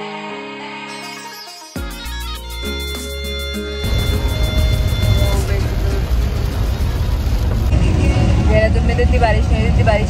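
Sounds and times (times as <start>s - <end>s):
rain hiss: 3.8s - 7.8s
car engine and road rumble: 3.8s - 10.0s.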